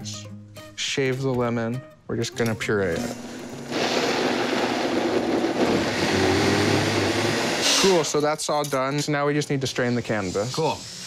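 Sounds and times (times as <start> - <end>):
blender running: 3.0 - 8.2.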